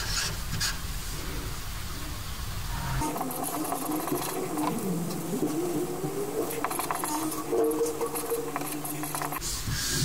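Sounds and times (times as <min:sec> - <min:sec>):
low wavering pitched tone: 0:02.7 - 0:09.4
marker scratching on paper: 0:06.6 - 0:09.4.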